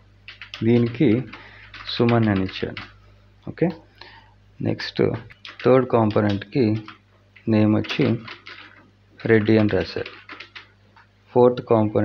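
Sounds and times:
computer keyboard typing: 0.3 - 3.0, 5.3 - 7.0, 7.7 - 10.7
person speaking: 0.4 - 10.6.

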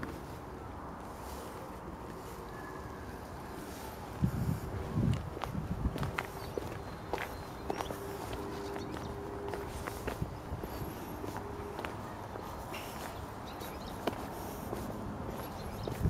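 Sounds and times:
footsteps on asphalt: 0.0 - 2.4, 3.6 - 16.0
outdoor background noise: 0.0 - 16.0.

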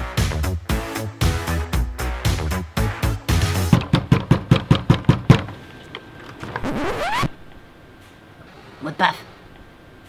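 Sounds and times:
fist knocking on door: 3.6 - 5.5
door squeaking open: 6.6 - 7.4.

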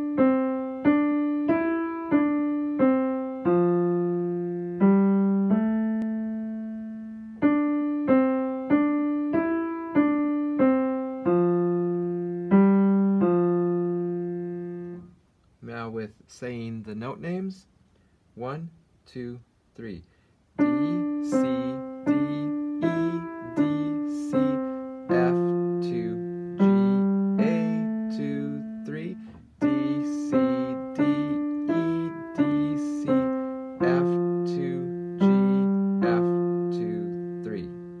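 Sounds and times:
slow piano melody: 0.0 - 15.2, 20.6 - 38.0
man speaking: 15.6 - 17.7, 18.4 - 37.8.

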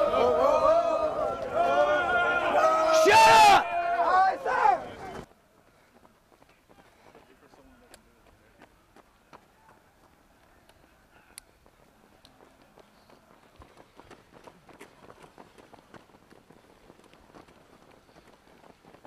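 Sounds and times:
runners' footsteps on asphalt: 0.0 - 19.0.

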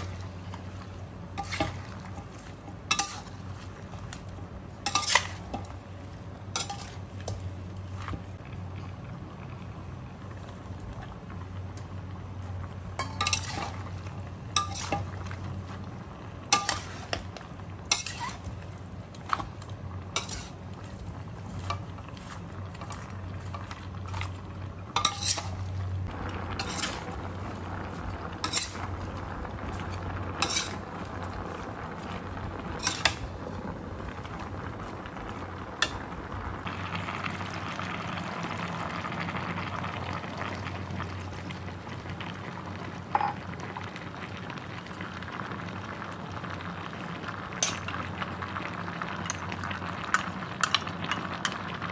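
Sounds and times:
steady low hum: 0.0 - 51.9
food sizzling hiss: 12.8 - 51.9.

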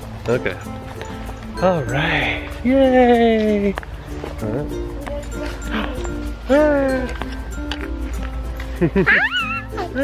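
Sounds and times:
light background music: 0.0 - 10.0
small child squealing laugh: 9.0 - 10.0.

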